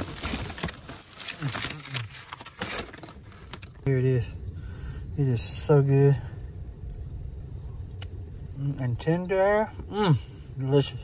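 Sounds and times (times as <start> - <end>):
paper bags crinkling: 0.0 - 3.9.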